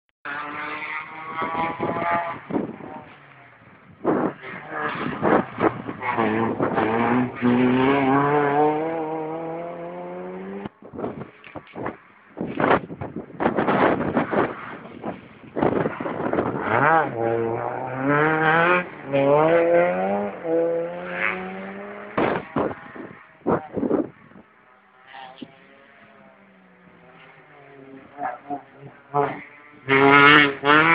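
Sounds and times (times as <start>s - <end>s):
rally car engines at full throttle: 0.3s - 30.9s.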